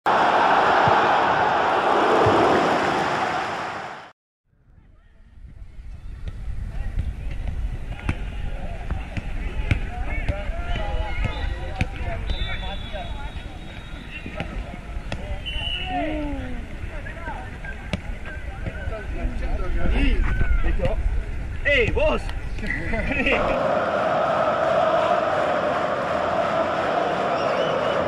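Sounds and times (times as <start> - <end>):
players' voices: 6.3 - 28.0.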